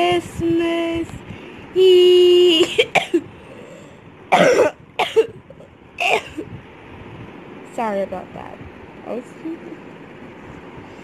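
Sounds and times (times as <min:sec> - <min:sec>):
girl coughing: 0:02.6 - 0:03.3, 0:04.3 - 0:05.4, 0:06.0 - 0:06.5.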